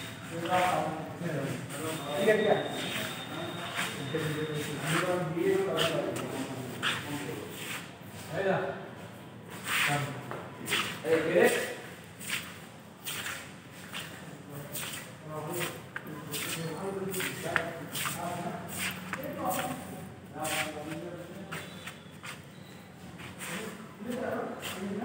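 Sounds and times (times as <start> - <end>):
people talking: 0.0 - 8.8, 9.6 - 11.9, 13.9 - 25.0.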